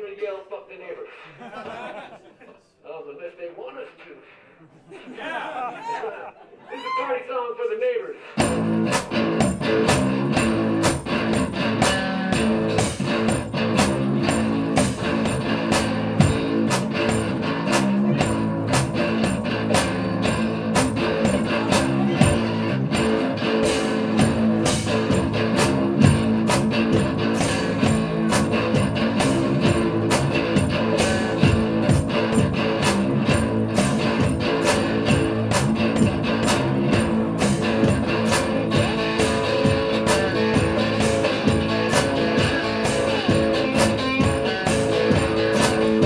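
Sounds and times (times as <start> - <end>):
amplified electric guitar: 8.4 - 46.0
driving drum beat: 8.4 - 46.0.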